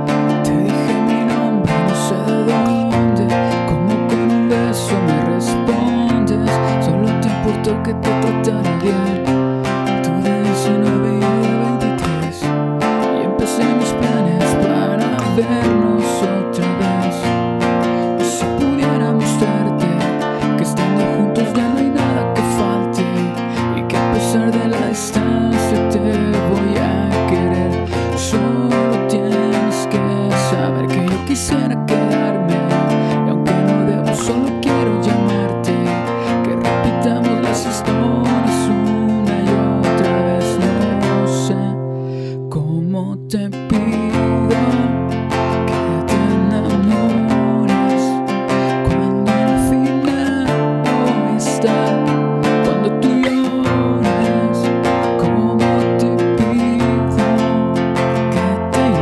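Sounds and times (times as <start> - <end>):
classical guitar strumming: 0.0 - 59.0.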